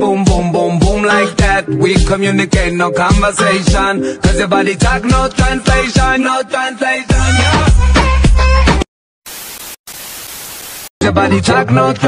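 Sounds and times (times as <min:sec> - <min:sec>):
television static hiss: 0:09.3 - 0:10.9.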